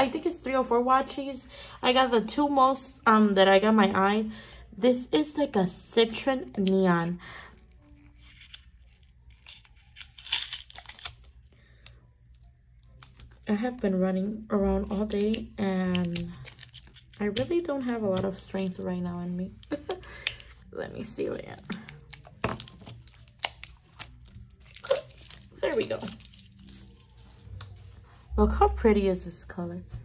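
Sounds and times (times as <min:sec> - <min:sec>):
tape wrapping crinkling and tearing: 0:06.6 - 0:18.8, 0:19.5 - 0:28.3.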